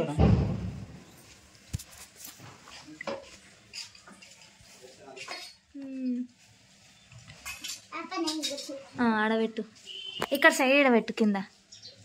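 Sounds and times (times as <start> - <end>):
light metallic clinks of utensils: 3.0 - 5.7, 7.3 - 8.8.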